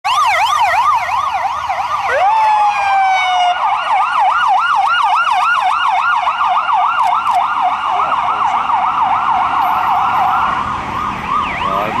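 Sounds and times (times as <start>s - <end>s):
warbling police sirens: 0.0s - 12.0s.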